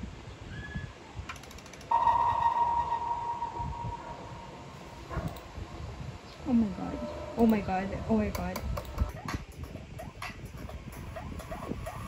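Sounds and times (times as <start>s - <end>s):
steady electronic tone: 1.9s - 8.1s.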